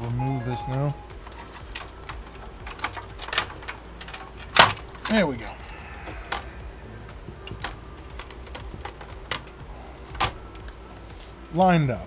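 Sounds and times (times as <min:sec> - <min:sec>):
steady low hum: 0:00.0 - 0:12.0
clicks and knocks in computer case: 0:01.2 - 0:05.2, 0:07.4 - 0:10.7.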